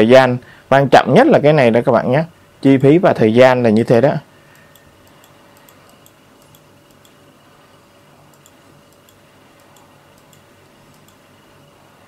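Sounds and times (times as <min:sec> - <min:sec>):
low room hum: 0:00.0 - 0:12.0
computer mouse clicks: 0:04.5 - 0:07.2, 0:08.3 - 0:11.2.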